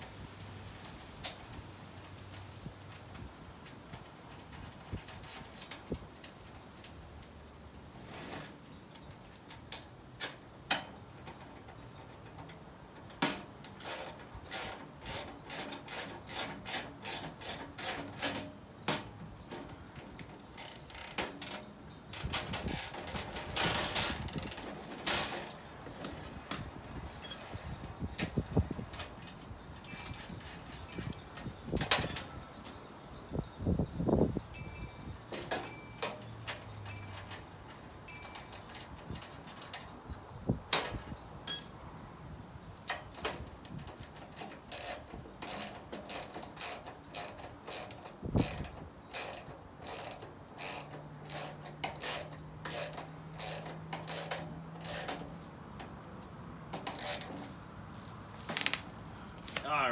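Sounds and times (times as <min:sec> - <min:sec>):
socket ratchet clicking: 0:13.8 - 0:18.4, 0:43.6 - 0:55.2.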